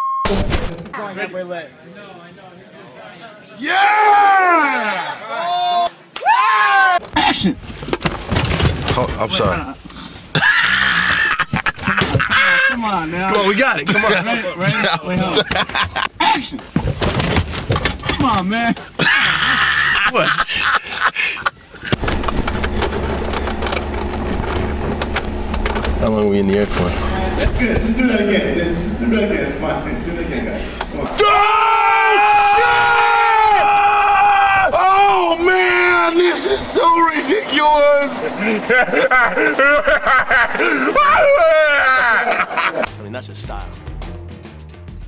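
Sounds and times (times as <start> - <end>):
men laughing: 9.2 - 16.8, 18.5 - 22.0, 34.3 - 43.0
man's high-pitched laughing cry: 10.3 - 12.8, 19.0 - 21.6, 38.3 - 42.9
steady low hum: 21.5 - 31.2.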